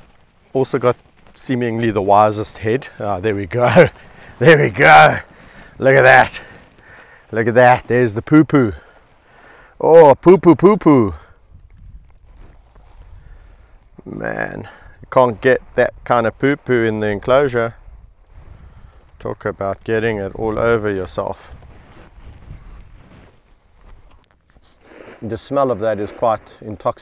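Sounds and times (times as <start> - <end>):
rustling in dry grass: 0.0 - 9.8, 11.1 - 27.0
small crackles: 0.0 - 9.8, 11.2 - 14.1, 17.7 - 27.0
body scuffing on dirt: 0.0 - 27.0.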